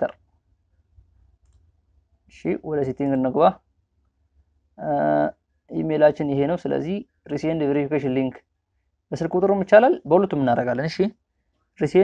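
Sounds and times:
faint computer mouse click: 0:01.4 - 0:01.7.

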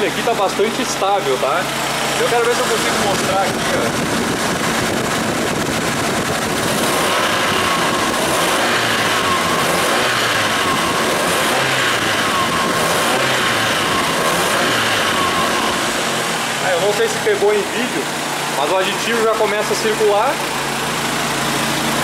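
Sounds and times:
car engine idling: 0:00.0 - 0:22.0.

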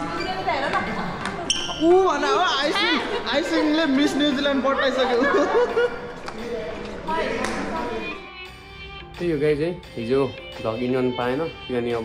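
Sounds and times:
young women talking: 0:00.0 - 0:01.5.

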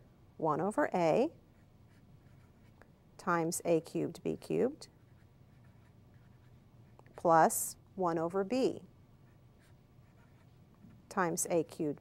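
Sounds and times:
marker scratching on paper: 0:01.5 - 0:02.8, 0:03.4 - 0:07.5, 0:09.2 - 0:10.6.

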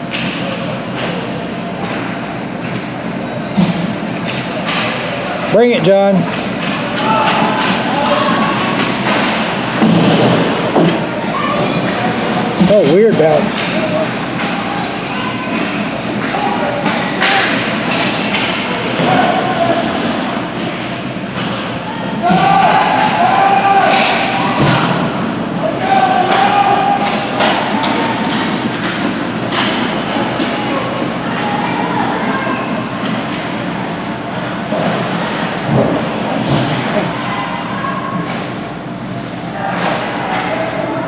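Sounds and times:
hockey sticks and puck clacking: 0:03.6 - 0:05.1, 0:06.2 - 0:31.2
spectators shouting: 0:21.8 - 0:28.5.

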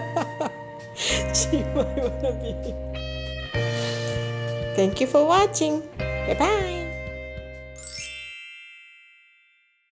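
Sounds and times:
background music: 0:00.0 - 0:08.5
bell-like chime: 0:07.8 - 0:10.0.

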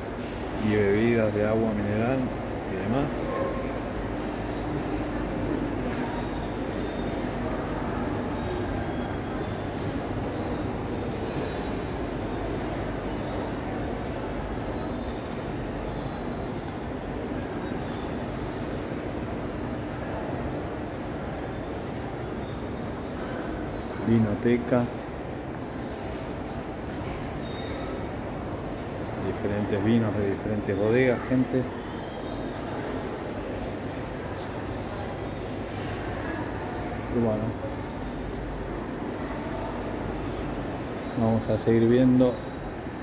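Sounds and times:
faint continuous hum: 0:00.0 - 0:43.0.

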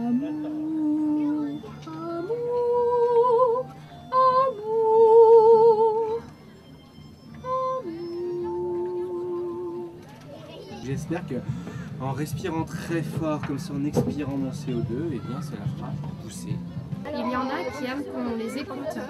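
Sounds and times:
woman singing with vibrato: 0:00.0 - 0:06.3, 0:07.3 - 0:10.0.

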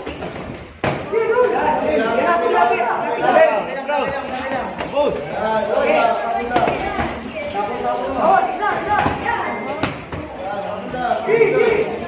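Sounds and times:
voices talking and calling out: 0:00.0 - 0:12.0.

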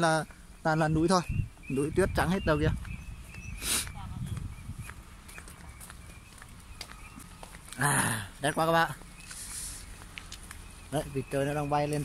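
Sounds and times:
ducks calling: 0:00.0 - 0:12.0
wind rumble on microphone: 0:00.8 - 0:06.7.

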